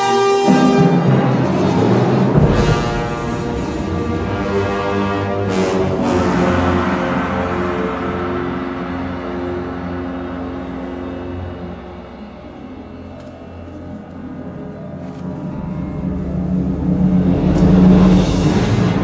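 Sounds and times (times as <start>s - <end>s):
orchestra playing dark music: 0.0s - 19.0s.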